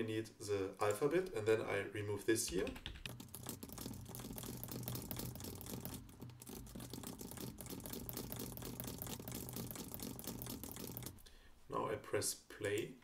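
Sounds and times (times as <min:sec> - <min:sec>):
computer keyboard typing: 0:02.5 - 0:11.2.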